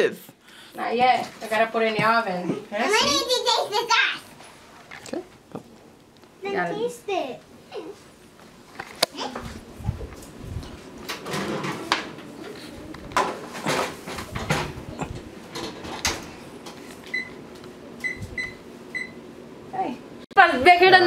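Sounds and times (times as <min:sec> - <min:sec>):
short keypad beeps: 0:18.0 - 0:19.2.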